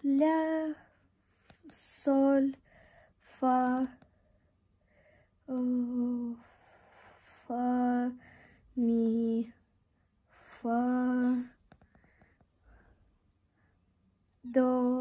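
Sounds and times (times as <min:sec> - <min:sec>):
girl singing held notes: 0:10.4 - 0:11.6, 0:14.4 - 0:15.0.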